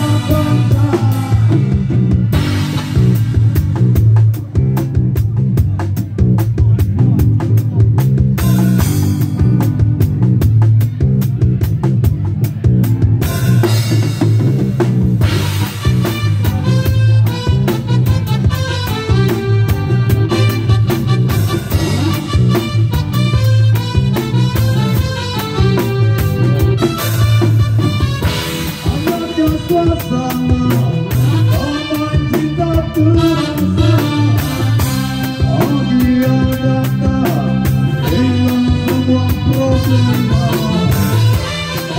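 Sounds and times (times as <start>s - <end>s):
bass: 0.0s - 41.9s
drum kit beat: 0.0s - 41.9s
electric guitars: 0.0s - 41.9s
keyboard: 0.0s - 41.9s.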